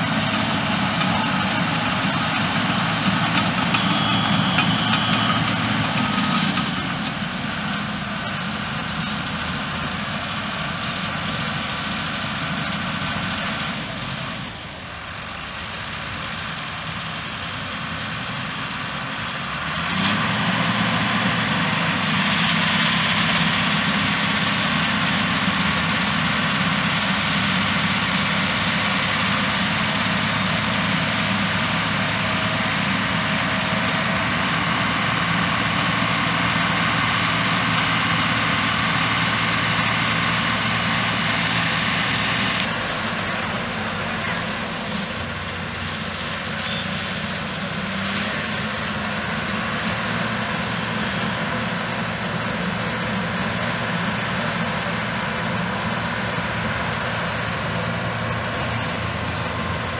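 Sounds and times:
heavy machinery engine running: 0:00.0 - 0:59.9.

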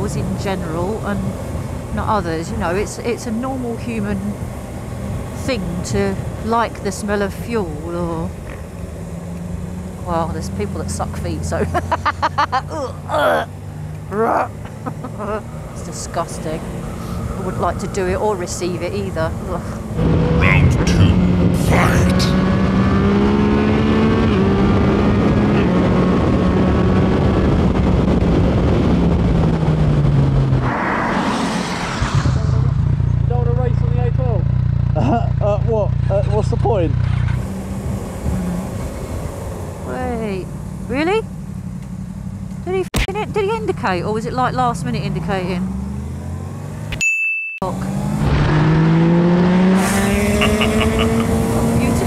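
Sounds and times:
motorcycle engine drone: 0:00.0 - 0:47.0, 0:47.6 - 0:52.0
people laughing over intercom: 0:11.5 - 0:12.8, 0:14.7 - 0:15.3, 0:50.3 - 0:51.3
wind rush on microphone: 0:17.1 - 0:33.2.

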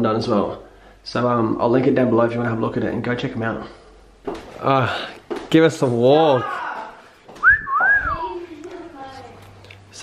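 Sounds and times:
person wolf whistling: 0:07.4 - 0:08.2.

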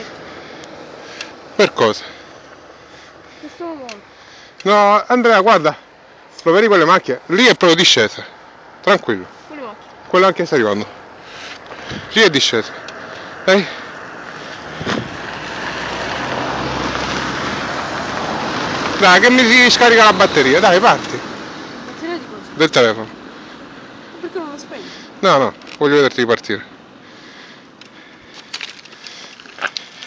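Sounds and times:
wind rushing over microphone: 0:11.8 - 0:12.2, 0:14.1 - 0:22.0.

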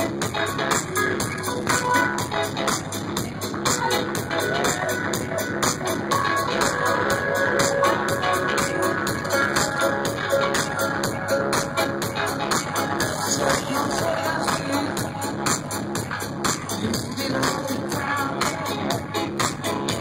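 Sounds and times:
live electronic dance music: 0:00.0 - 0:20.0.

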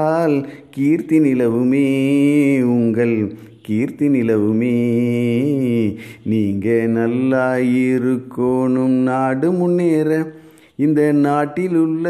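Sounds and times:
man singing long-held notes: 0:00.0 - 0:12.0.

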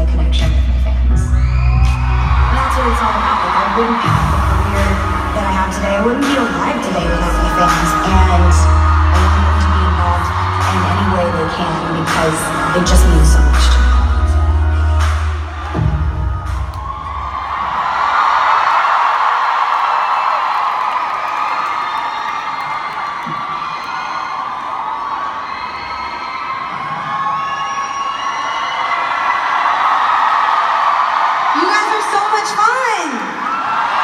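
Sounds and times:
crowd cheering and screaming: 0:01.1 - 0:34.0
music track with heavy bass: 0:04.1 - 0:16.8.

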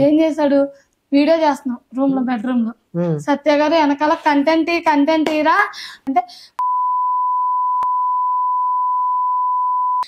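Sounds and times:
high-pitched censor bleep: 0:06.6 - 0:10.0.

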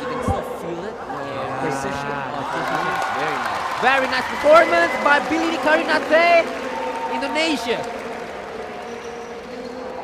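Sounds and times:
indoor sports hall background noise: 0:00.0 - 0:10.0.

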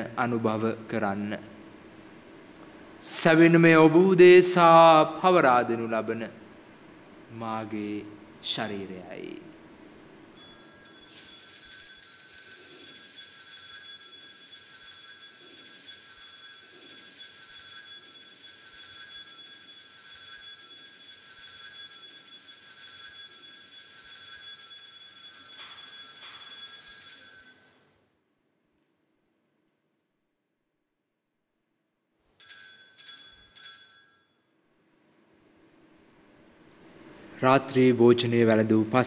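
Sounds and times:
altar bells jingling: 0:10.4 - 0:28.0.

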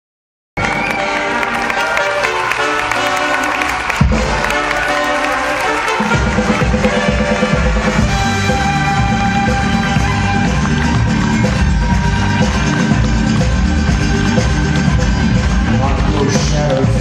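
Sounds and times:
audience applause: 0:00.6 - 0:16.4
music over loudspeakers: 0:00.6 - 0:17.0.

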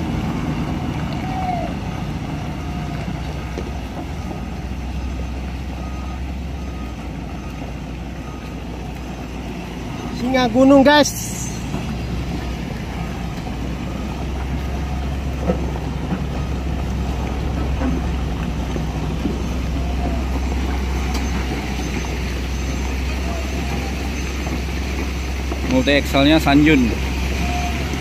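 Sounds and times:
diesel engine droning: 0:00.0 - 0:28.0.

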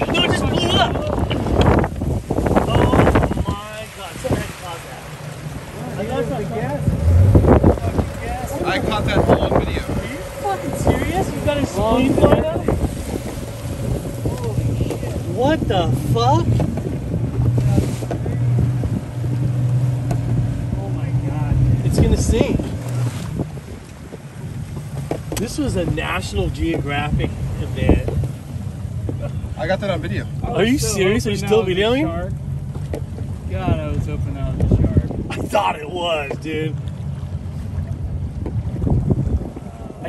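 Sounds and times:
boat motor droning: 0:00.0 - 0:40.0
wind buffeting microphone: 0:00.0 - 0:40.0
faint voices: 0:02.6 - 0:16.7.

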